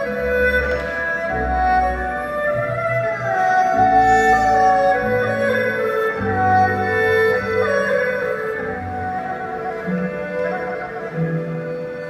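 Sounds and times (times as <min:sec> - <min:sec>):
bowed erhu solo: 0:00.0 - 0:12.0
traditional orchestra playing slow music: 0:00.0 - 0:12.0.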